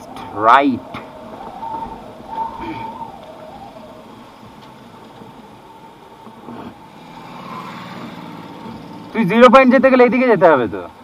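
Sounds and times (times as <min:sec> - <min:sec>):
motorcycle engine running: 0:04.9 - 0:09.8.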